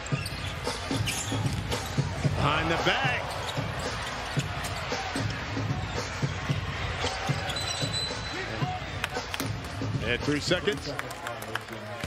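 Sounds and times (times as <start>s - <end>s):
shoe squeaks: 0.0s - 2.1s, 3.2s - 5.1s, 7.3s - 8.5s
background music: 0.0s - 12.0s
crowd noise: 0.0s - 12.0s.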